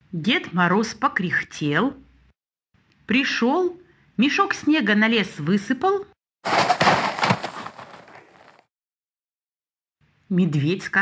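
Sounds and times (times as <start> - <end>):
snow pouring from a sack: 6.5 - 8.6.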